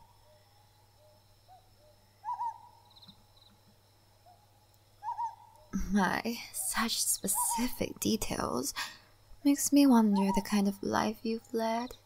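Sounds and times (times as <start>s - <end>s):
owl hooting: 0.0s - 3.5s, 4.2s - 5.7s, 7.2s - 7.8s, 10.1s - 10.6s
faint bird chirps: 0.0s - 5.9s, 10.1s - 10.6s.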